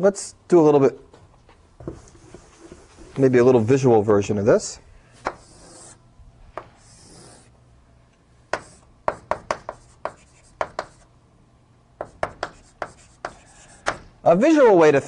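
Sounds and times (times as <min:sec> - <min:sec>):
chalk scraping on board: 0:05.3 - 0:06.0, 0:06.8 - 0:07.5, 0:08.6 - 0:11.1, 0:12.0 - 0:14.0
sharp taps and strokes on board: 0:08.5 - 0:11.0, 0:12.0 - 0:14.1.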